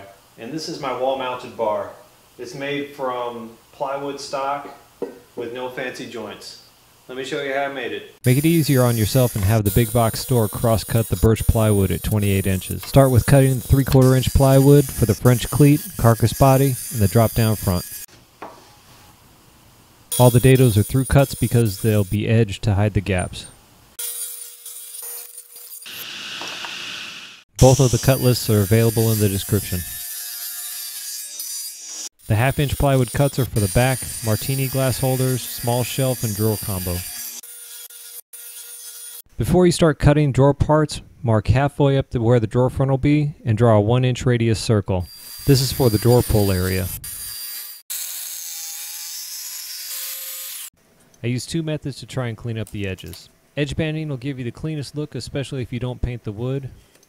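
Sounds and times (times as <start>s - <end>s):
table saw cutting wood: 8.3s - 18.1s, 24.0s - 39.2s, 45.0s - 50.7s
jigsaw cutting wood: 25.0s - 27.5s.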